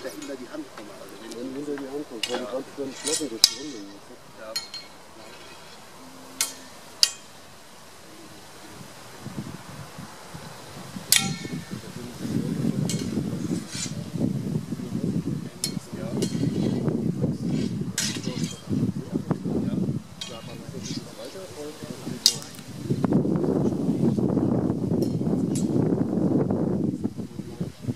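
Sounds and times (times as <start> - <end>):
swords clashing: 6.4 - 7.3, 11.2 - 11.5.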